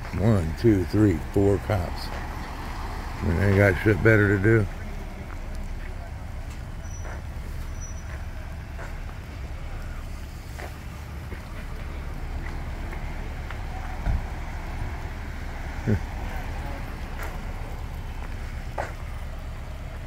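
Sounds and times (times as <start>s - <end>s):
idling vehicles and traffic rumble: 0.0s - 20.0s.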